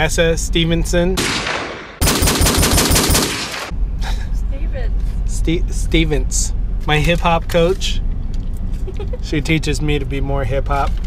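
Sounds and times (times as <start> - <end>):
automatic gunfire burst: 1.2 - 3.7
gunshot blast: 1.2 - 3.7.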